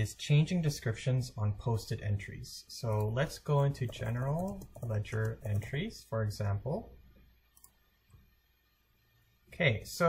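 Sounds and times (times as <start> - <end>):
computer mouse click: 7.5 - 8.3.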